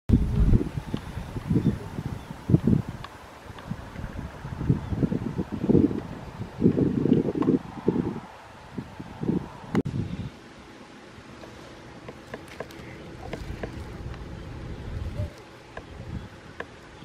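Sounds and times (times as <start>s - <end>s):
wind buffeting microphone: 0.1s - 10.4s, 12.0s - 17.0s.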